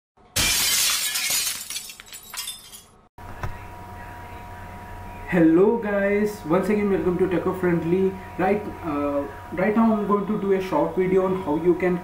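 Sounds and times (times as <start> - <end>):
glass fragments clinking: 0.4 - 3.0
glass shattering: 0.4 - 3.0
faint steady hum: 1.3 - 12.0.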